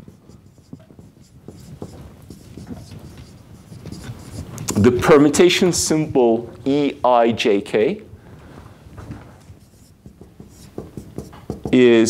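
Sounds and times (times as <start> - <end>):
marker writing on whiteboard: 0.0 - 6.8, 9.4 - 12.0.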